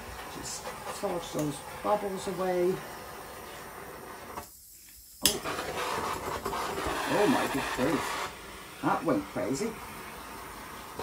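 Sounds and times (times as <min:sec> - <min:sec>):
gas torch flame hissing: 0:00.0 - 0:11.0.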